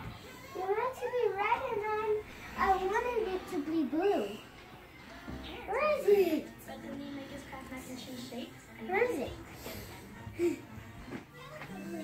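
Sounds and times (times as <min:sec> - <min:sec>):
child's sing-song voice: 0:00.0 - 0:04.5, 0:10.4 - 0:12.0.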